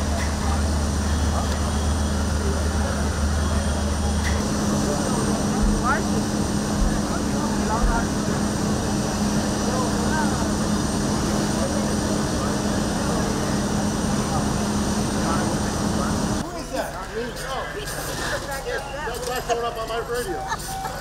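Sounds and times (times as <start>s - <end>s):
faint indistinct voices: 0.0s - 21.0s
fire engines running: 0.0s - 21.0s.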